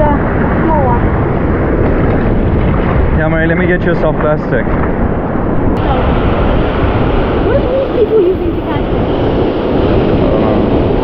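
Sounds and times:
ocean surf: 0:00.0 - 0:11.0
wind noise on microphone: 0:00.0 - 0:11.0.

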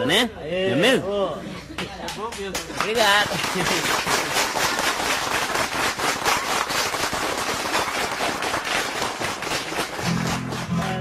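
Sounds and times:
audience applauding: 0:02.3 - 0:11.0.

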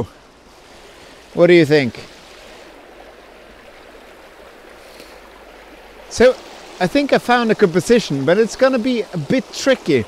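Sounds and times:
water running over stones: 0:00.0 - 0:10.0.

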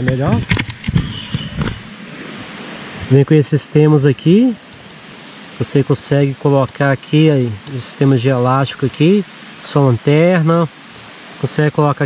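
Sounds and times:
stream rushing: 0:00.0 - 0:12.0.

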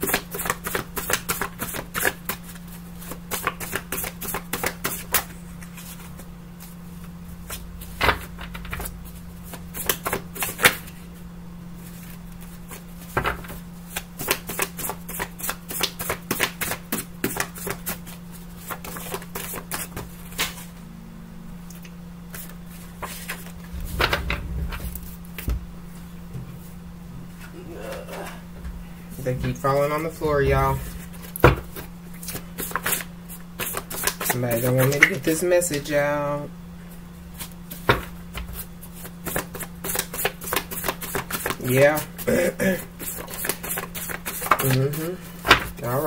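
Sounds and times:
steady low hum: 0:00.0 - 0:39.9
cards being shuffled: 0:11.9 - 0:20.6, 0:30.9 - 0:35.2, 0:39.0 - 0:42.1, 0:43.0 - 0:45.8.

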